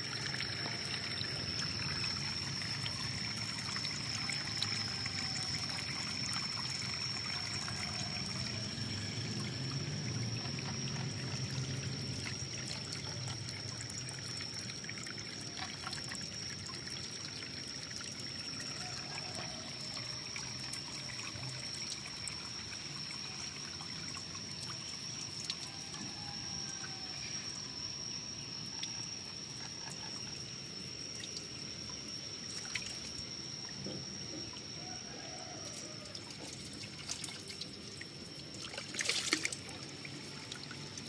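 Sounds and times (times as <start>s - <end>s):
water trickling into pond: 0.0s - 41.0s.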